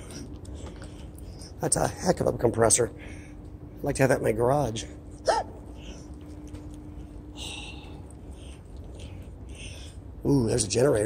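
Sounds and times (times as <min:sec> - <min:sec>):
low factory hum: 0:00.0 - 0:11.0.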